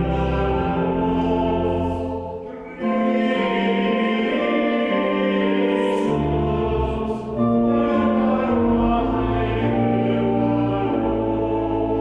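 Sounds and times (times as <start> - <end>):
pipe organ chords: 0.0 - 12.0
voices singing: 0.0 - 12.0.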